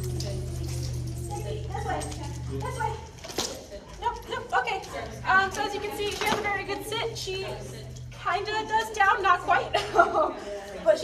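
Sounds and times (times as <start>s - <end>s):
indistinct voices: 0.0s - 11.0s
steady low hum: 0.0s - 11.0s.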